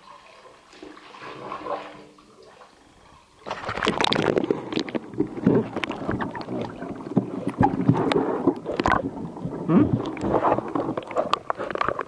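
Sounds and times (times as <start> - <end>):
muffled water sloshing underwater: 0.0 - 12.0
bubbling gurgles: 0.6 - 12.0.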